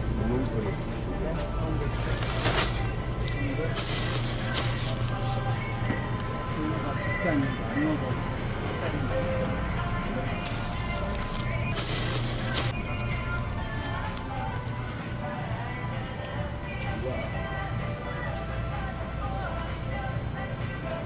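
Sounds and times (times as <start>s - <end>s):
background music: 0.0s - 21.0s.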